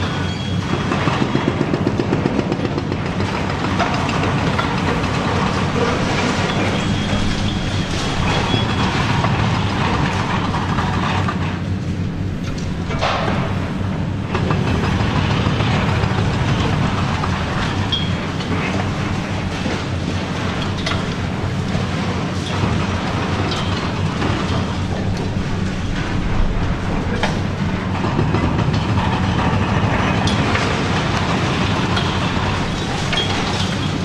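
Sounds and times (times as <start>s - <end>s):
high squeal: 0.0s - 0.6s, 6.3s - 9.2s
excavator diesel engine running: 0.0s - 34.0s
concrete crackling and crunching: 3.2s - 34.0s.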